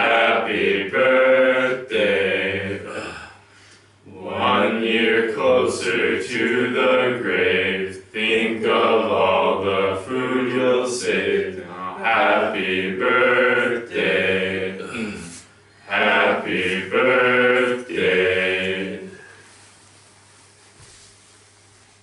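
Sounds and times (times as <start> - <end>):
group singing a cappella: 0.0 - 3.3, 4.0 - 19.6.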